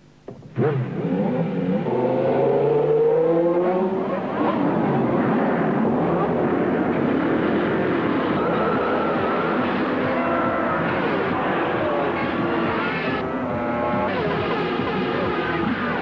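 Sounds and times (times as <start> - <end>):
racing car engines revving: 0.3 - 16.0
racing cars passing: 0.6 - 16.0.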